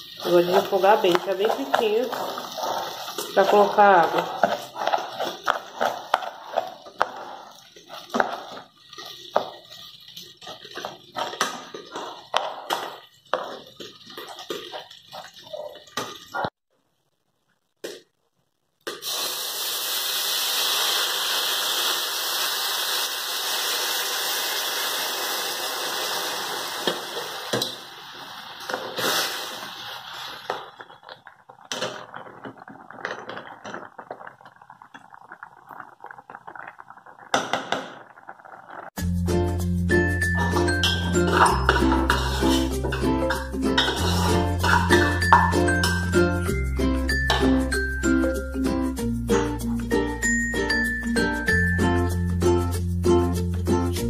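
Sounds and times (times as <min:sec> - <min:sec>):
water hissing on hot rice: 0:00.0 - 0:15.8, 0:19.0 - 0:30.8, 0:41.3 - 0:45.3
spoon stirring and scraping rice: 0:00.0 - 0:16.5, 0:40.4 - 0:46.0
rice frying in oil: 0:00.0 - 0:16.6, 0:19.0 - 0:39.1, 0:40.2 - 0:46.1
soft crackling: 0:00.0 - 0:18.6, 0:28.2 - 0:39.0.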